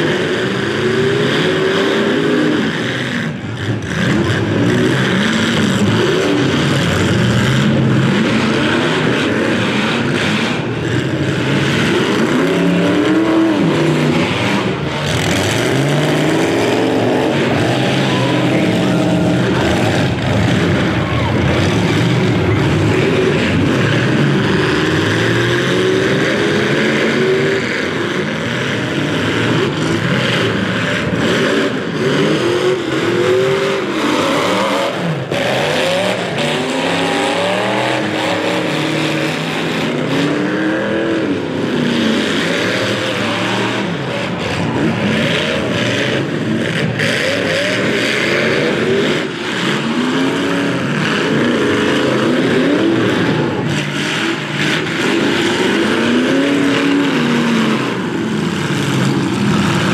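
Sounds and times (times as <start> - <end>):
engines revving: 0.0 - 59.9.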